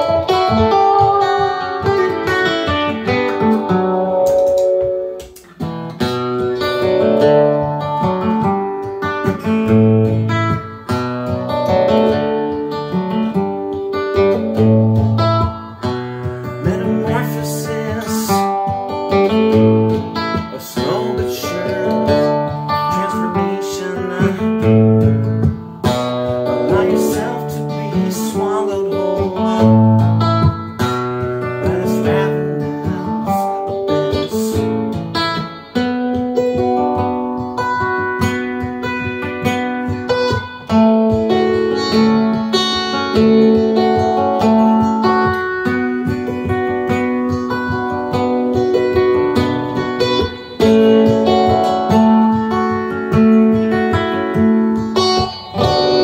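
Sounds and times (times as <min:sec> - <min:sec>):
acoustic guitar chords: 0:00.0 - 0:56.0.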